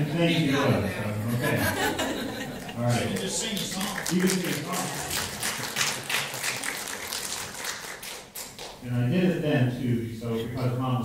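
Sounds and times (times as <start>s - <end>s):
people clapping: 2.5s - 8.8s.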